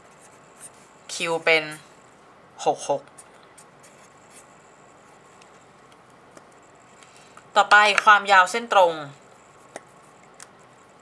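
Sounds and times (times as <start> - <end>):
felt-tip marker scratching: 3.1 - 4.5.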